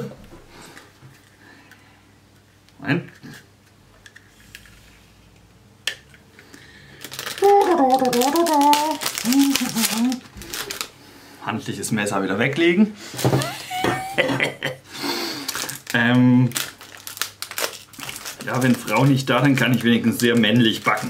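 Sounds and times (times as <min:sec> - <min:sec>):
man humming: 0:13.4 - 0:14.4.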